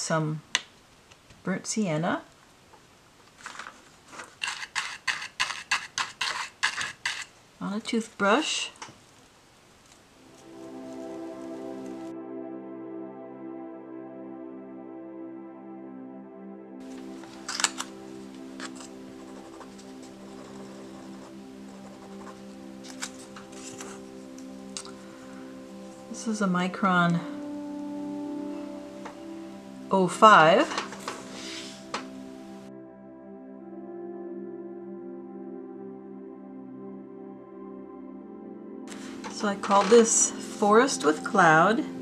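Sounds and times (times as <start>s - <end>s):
art supplies clicking and rustling: 3.3s - 7.3s, 16.9s - 18.0s, 18.6s - 25.0s, 30.7s - 31.2s, 38.9s - 40.3s
toothbrush scrubbing plastic: 3.4s - 7.3s, 18.6s - 24.0s
soft background music: 10.1s - 42.0s.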